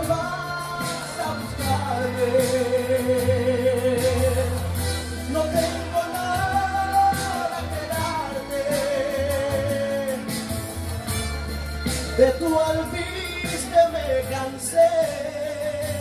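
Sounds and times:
man singing into a microphone: 0.0s - 11.0s, 12.0s - 16.0s
karaoke backing track: 0.0s - 16.0s.

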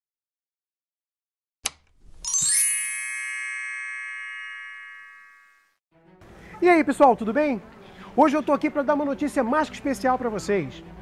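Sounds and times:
bright chime ringing: 2.2s - 5.7s.

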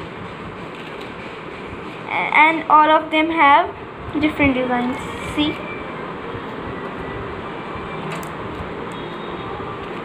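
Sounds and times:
steady background noise: 0.0s - 10.0s.

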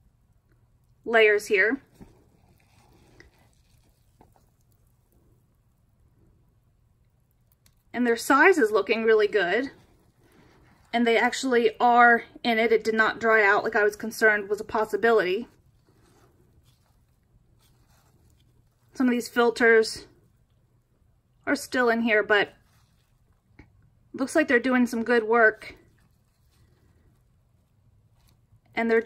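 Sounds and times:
soft rustles of damp bedding: 1.4s - 5.4s, 8.1s - 20.5s, 22.2s - 23.9s.

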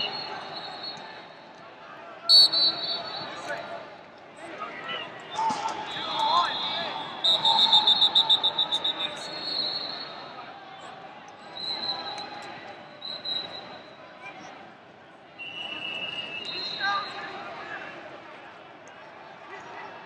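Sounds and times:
coaches and spectators shouting: 0.0s - 20.0s
referee whistle blasts: 2.3s - 3.6s, 5.4s - 10.3s, 11.6s - 13.9s, 15.4s - 17.4s.

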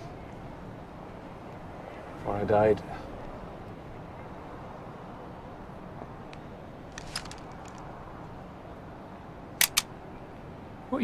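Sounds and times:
sharp clicks: 9.6s - 9.9s.

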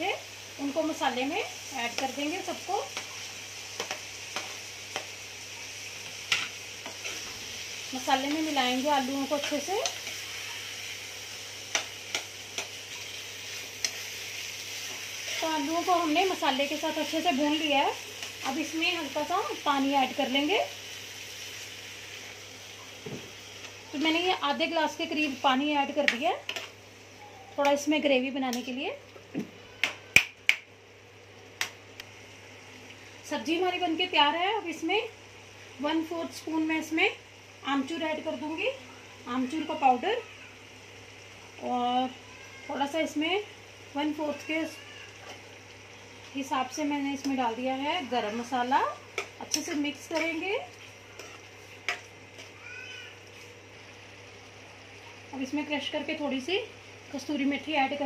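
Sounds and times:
food sizzling in frying pan: 0.0s - 58.0s.

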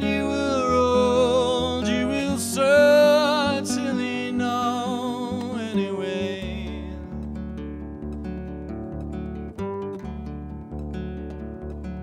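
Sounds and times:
man singing with vibrato: 0.0s - 7.4s
acoustic guitar playing: 0.0s - 12.0s.

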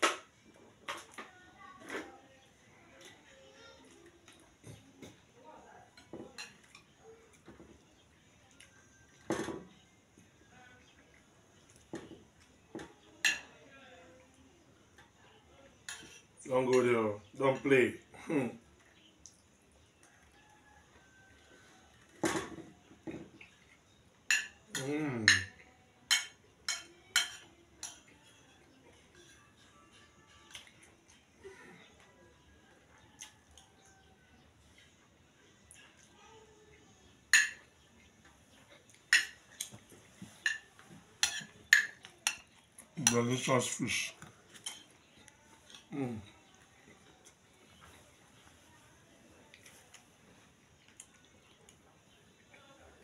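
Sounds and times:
faint music: 0.0s - 53.0s
cutlery clinking against a plate: 5.9s - 7.7s, 12.8s - 13.6s, 15.8s - 17.7s, 22.1s - 31.3s, 37.3s - 43.8s, 44.4s - 45.9s
spoon clinking on ceramic plate: 24.3s - 28.4s, 37.3s - 37.7s, 39.1s - 39.4s, 40.4s - 43.4s.

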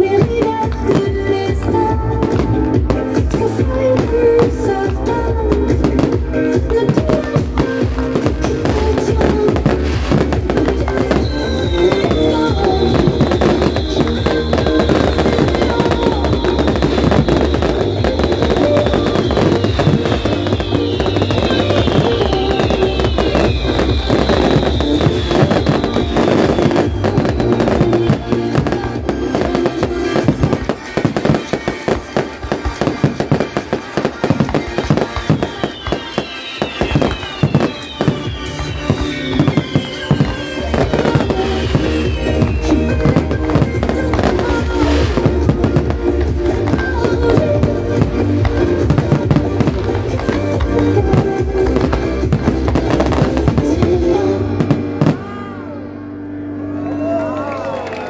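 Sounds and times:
fireworks banging and crackling: 0.0s - 55.5s
loud music: 0.0s - 58.0s.

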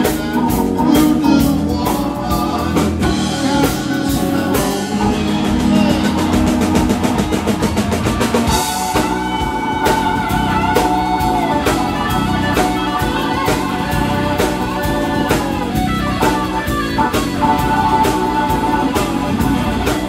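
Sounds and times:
bass guitar: 0.0s - 20.0s
drum kit: 0.0s - 20.0s
electric guitar: 0.0s - 20.0s
keyboard: 0.0s - 20.0s.

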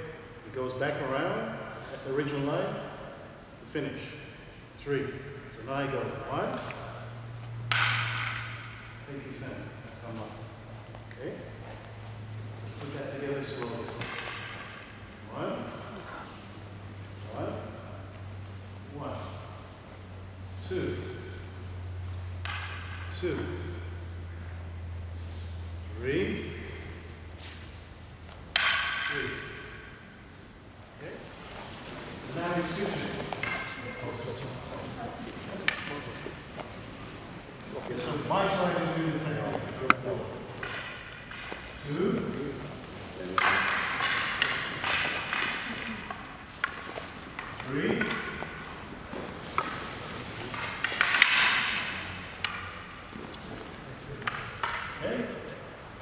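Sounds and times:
wooden practice swords clacking: 7.4s - 9.1s, 12.7s - 16.2s, 21.4s - 24.2s, 28.2s - 30.4s, 31.2s - 56.0s.

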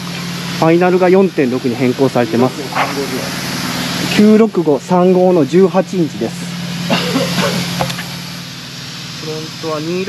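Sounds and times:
hiss: 0.0s - 10.0s
low engine hum: 0.0s - 10.0s
man speaking: 0.5s - 3.4s, 4.0s - 7.6s, 9.2s - 10.0s.

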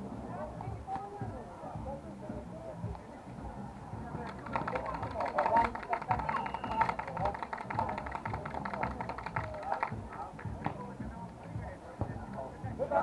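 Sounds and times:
background music: 0.0s - 13.0s
people talking and calling out: 0.0s - 13.0s.

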